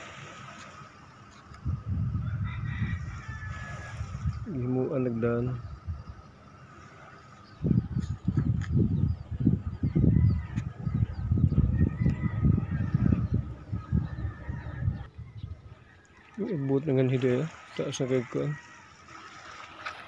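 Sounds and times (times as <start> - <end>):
wind buffeting microphone: 1.5 - 6.4, 7.4 - 17.7.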